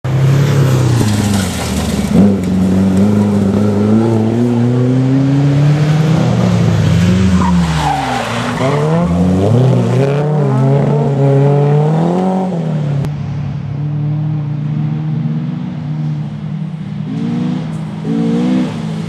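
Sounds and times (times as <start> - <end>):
rally car engines revving: 0.1 - 13.1, 13.8 - 19.0
car accelerating over gravel: 0.6 - 4.7.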